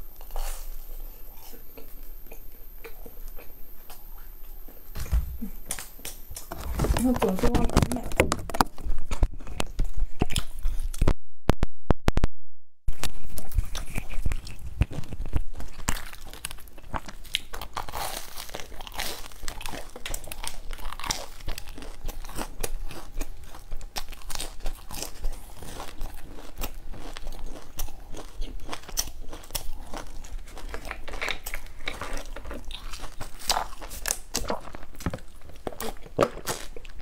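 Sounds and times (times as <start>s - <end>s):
wet chewing: 0.1s - 11.0s, 12.9s - 37.0s
crust crunching: 4.7s - 11.2s, 12.9s - 37.0s.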